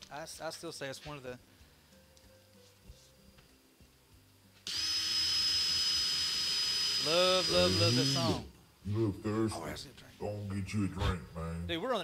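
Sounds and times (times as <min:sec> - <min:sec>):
cordless drill whining: 0:04.6 - 0:08.5.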